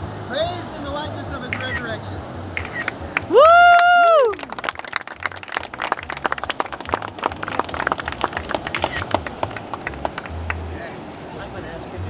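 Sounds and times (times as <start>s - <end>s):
people clapping: 2.9s - 10.8s
person cheering: 3.3s - 4.5s.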